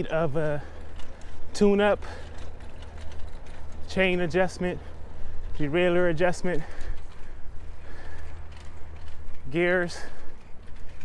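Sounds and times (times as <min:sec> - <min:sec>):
bicycle rolling on pavement: 0:00.0 - 0:11.0
heavy breathing: 0:06.6 - 0:09.0.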